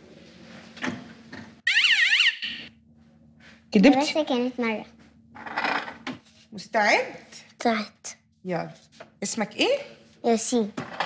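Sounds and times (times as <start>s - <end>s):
high warbling alarm tone: 1.6s - 2.7s.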